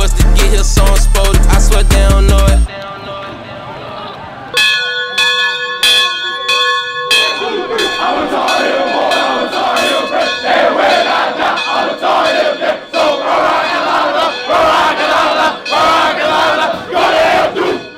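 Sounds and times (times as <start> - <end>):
crowd shouting and cheering: 0.0 - 17.9
large bell ringing: 4.5 - 17.9.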